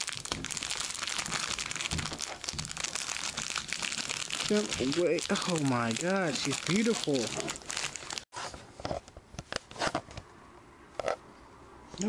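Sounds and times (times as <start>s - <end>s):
plastic wrapper crinkling: 0.0s - 8.3s.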